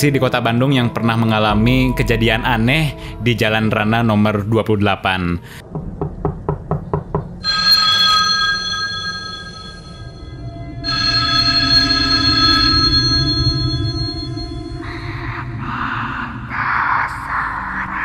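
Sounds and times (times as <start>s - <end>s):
low drone: 0.0s - 4.8s, 9.1s - 18.0s
telephone ringing: 7.4s - 14.5s.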